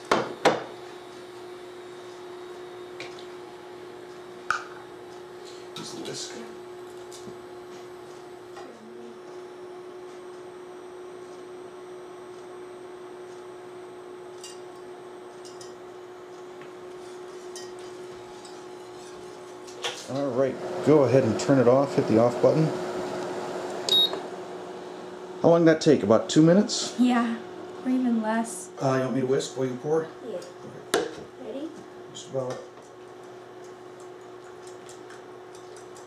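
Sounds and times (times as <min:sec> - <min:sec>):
induction cooktop humming: 0:00.0 - 0:36.0.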